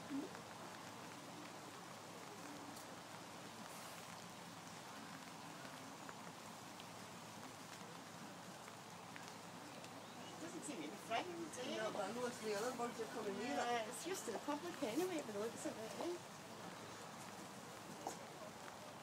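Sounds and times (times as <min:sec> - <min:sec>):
faint outdoor hiss: 0:00.0 - 0:19.0.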